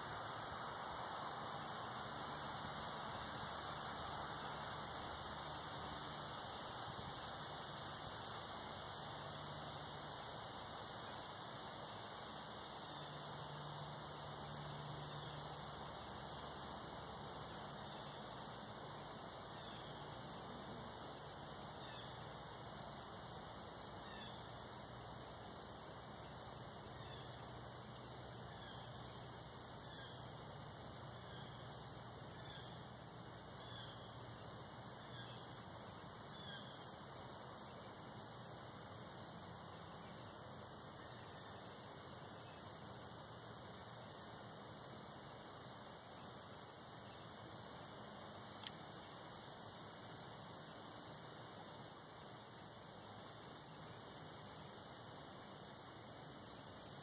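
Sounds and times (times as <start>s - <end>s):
insects trilling: 0.0s - 57.0s.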